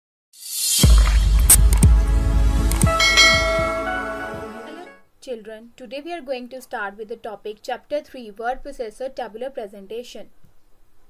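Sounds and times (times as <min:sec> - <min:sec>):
bell-like chime: 0:02.8 - 0:04.9.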